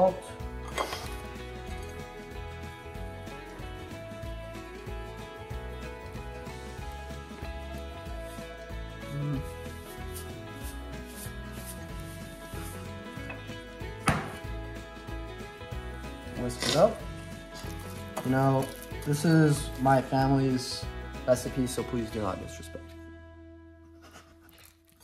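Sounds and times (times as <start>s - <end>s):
background music with beat: 0.0s - 22.4s
sharp knock: 14.0s - 14.4s.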